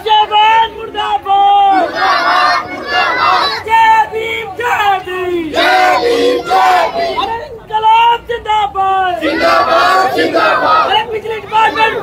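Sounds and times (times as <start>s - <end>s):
protesters chanting slogans: 0.0s - 7.4s, 9.0s - 12.0s.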